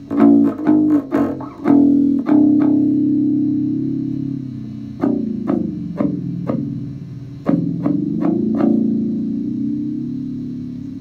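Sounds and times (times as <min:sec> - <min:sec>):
electric bass guitar plucked notes: 0:00.0 - 0:11.0.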